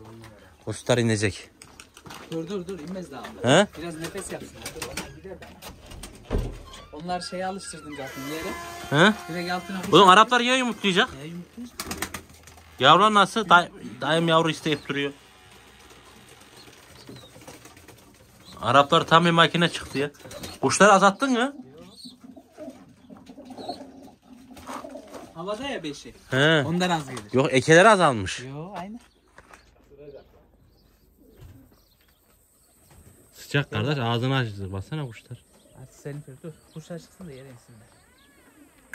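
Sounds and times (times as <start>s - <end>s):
pigeons cooing: 13.6s - 25.8s, 30.7s - 32.0s, 35.4s - 38.9s
pigeon cooing: 20.2s - 25.4s, 37.8s - 38.9s.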